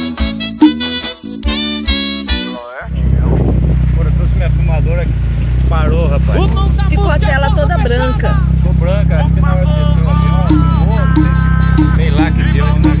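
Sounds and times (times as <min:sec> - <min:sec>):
people talking: 0:02.4 - 0:13.0
dune buggy engine running: 0:02.9 - 0:13.0.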